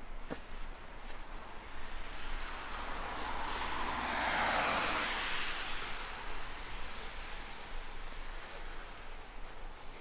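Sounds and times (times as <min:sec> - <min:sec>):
car passing with tyre noise: 0:00.0 - 0:10.0.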